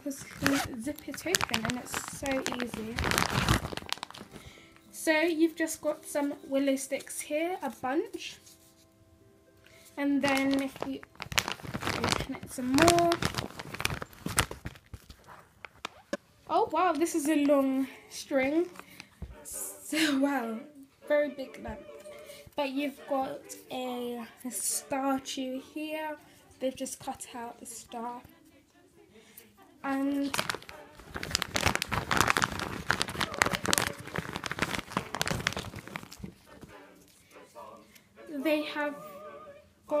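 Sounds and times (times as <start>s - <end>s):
plastic packaging crinkling: 0.0s - 4.9s, 10.2s - 17.9s, 30.1s - 37.2s.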